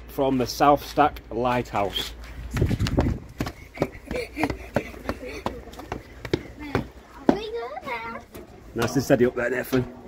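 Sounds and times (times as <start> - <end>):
footsteps climbing steps: 0.9 - 9.0.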